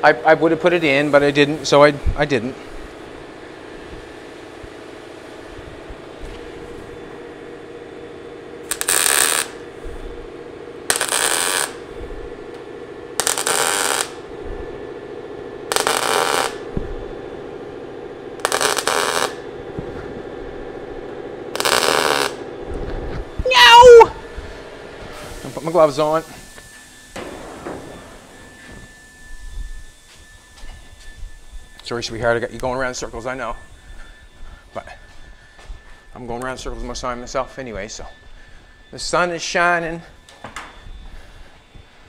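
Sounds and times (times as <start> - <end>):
steady hum: 0.0 - 42.0
welder tack welds: 8.6 - 9.6, 10.9 - 11.8, 13.2 - 14.2, 15.7 - 16.7, 18.4 - 19.4, 21.5 - 22.4
person speaking: 23.5 - 24.2.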